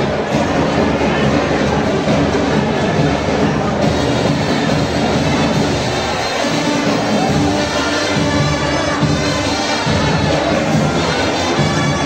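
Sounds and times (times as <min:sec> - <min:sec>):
drums and cymbals rhythm: 0:00.0 - 0:12.0
marching band playing: 0:00.0 - 0:12.0.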